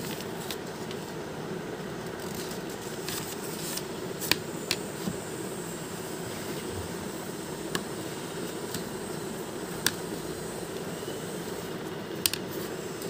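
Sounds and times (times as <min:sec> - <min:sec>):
room fan humming: 0:00.0 - 0:13.0.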